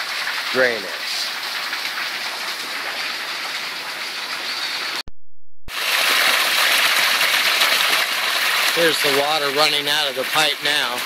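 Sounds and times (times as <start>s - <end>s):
water gushing onto rocks: 0.0s - 5.0s, 5.7s - 11.0s.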